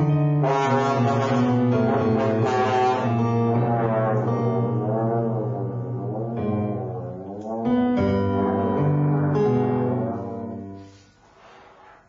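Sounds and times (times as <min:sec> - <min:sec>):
trombone playing: 0:00.0 - 0:11.0.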